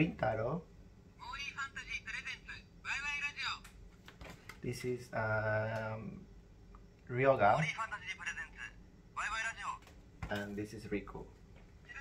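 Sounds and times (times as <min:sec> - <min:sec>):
tinny toy voice speaking: 0:01.2 - 0:03.6, 0:07.5 - 0:09.8.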